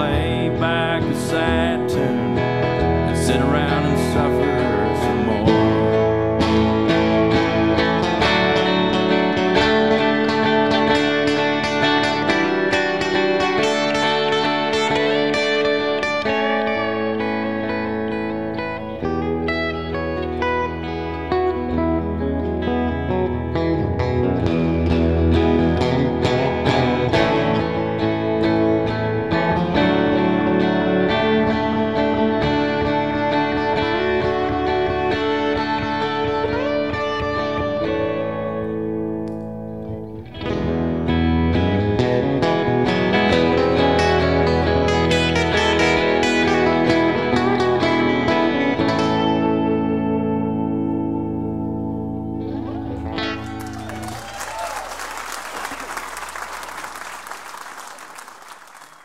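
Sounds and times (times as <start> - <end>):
electric guitars playing: 0.0 - 59.0
audience applause: 52.9 - 59.0.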